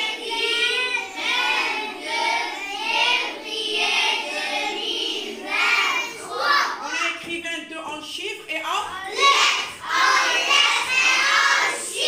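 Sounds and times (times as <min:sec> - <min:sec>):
children singing in unison: 0:00.0 - 0:06.8, 0:09.1 - 0:12.0.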